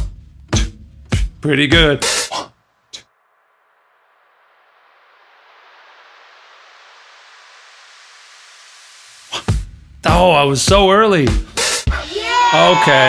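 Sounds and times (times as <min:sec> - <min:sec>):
noise riser hiss: 0:02.0 - 0:10.0.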